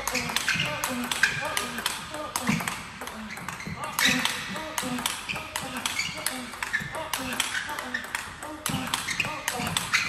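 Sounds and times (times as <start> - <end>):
ping-pong ball hitting bats: 0.0 - 10.0.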